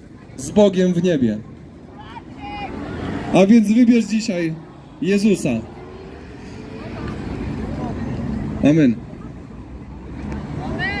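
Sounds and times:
traffic rumble of passing cars: 0:00.0 - 0:11.0.

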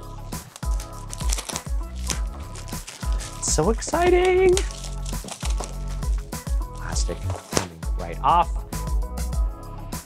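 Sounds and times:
background music with steady beat: 0:00.0 - 0:10.0
plastic wrap crinkling: 0:00.3 - 0:07.7.

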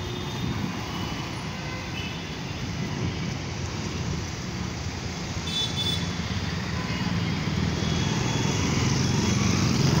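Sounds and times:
vehicle engines passing: 0:02.6 - 0:10.0.

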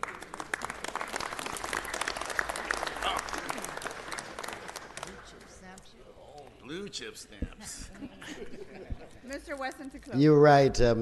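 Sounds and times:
crowd applauding: 0:00.0 - 0:05.6.

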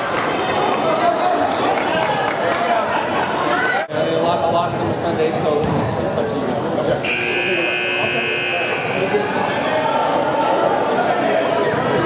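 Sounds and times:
chatter of voices: 0:00.0 - 0:12.0
electric buzzer: 0:07.0 - 0:09.0.

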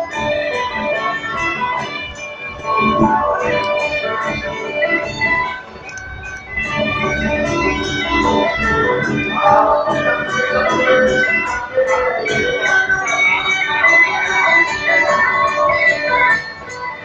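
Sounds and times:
music with guitar over loudspeakers: 0:00.0 - 0:17.0.

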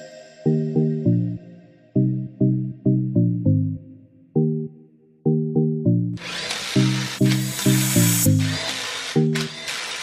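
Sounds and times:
plucked rhythmic background music: 0:00.0 - 0:09.7
power tool whirring: 0:06.2 - 0:10.0.

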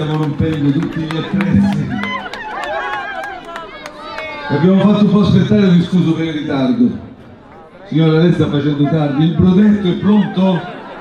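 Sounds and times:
voices calling and talking: 0:00.0 - 0:11.0.

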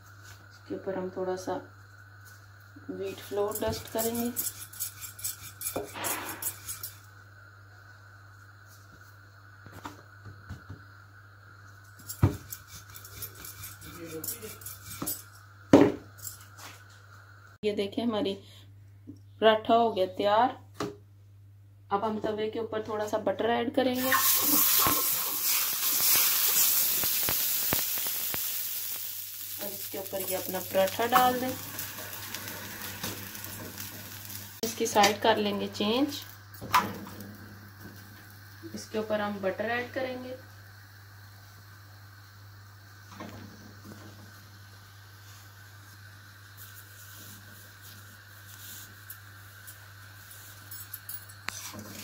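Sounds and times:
flatbread sizzling in butter: 0:01.8 - 0:07.6, 0:11.5 - 0:15.5, 0:24.0 - 0:39.6, 0:40.6 - 0:52.0.

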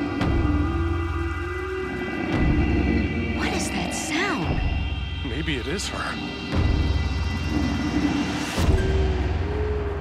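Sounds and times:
eerie horn-like drone: 0:00.0 - 0:10.0.

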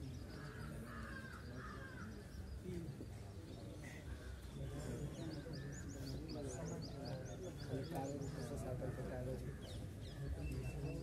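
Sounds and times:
bird calls: 0:00.0 - 0:11.0.

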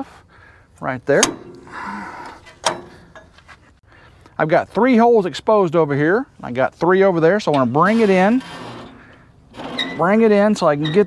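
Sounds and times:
sharp metal clank: 0:01.1 - 0:03.4
metal scraping: 0:01.1 - 0:03.8, 0:07.4 - 0:11.0.

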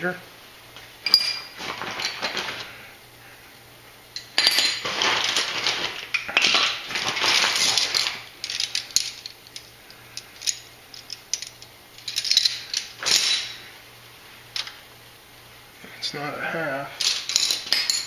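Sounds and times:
metal wrenches clinking and rattling: 0:01.0 - 0:02.7, 0:04.2 - 0:13.7, 0:17.0 - 0:18.0.

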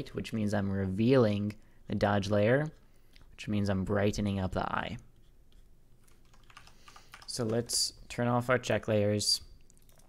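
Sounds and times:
computer keyboard clicks: 0:06.0 - 0:07.8.

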